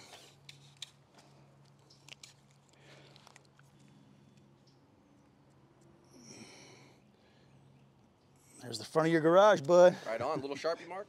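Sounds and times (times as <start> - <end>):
soft clicks and scrapes: 0.0 - 4.8.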